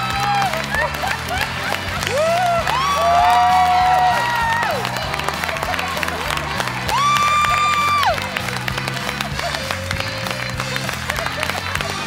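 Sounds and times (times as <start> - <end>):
audience clapping and cheering: 0.0 - 12.0
upbeat music with beat: 0.0 - 12.0.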